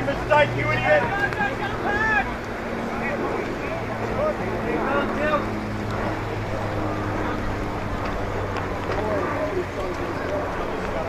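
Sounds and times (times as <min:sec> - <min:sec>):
distant voices calling out: 0:00.0 - 0:11.0
steady low hum: 0:00.0 - 0:11.0.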